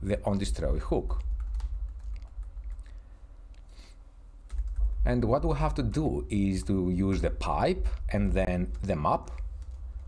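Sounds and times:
low steady hum: 0.0 - 10.0
computer keyboard keystrokes: 1.2 - 3.0, 4.5 - 5.0.

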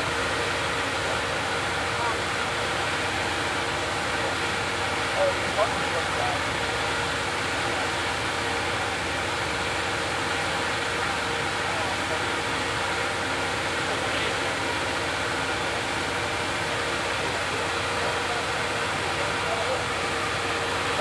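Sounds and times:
faint voices: 0.0 - 6.9, 10.5 - 21.0
idling train hum: 0.0 - 21.0.

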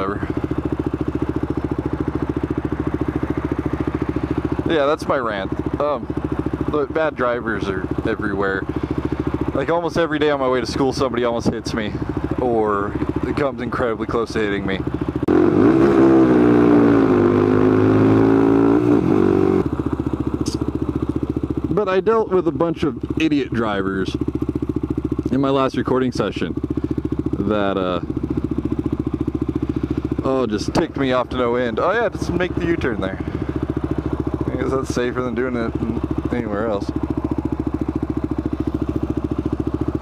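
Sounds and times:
motorcycle engine idling: 0.0 - 40.0.

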